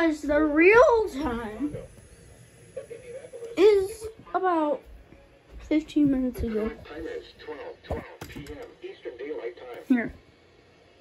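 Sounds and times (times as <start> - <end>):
person speaking: 5.6 - 8.8.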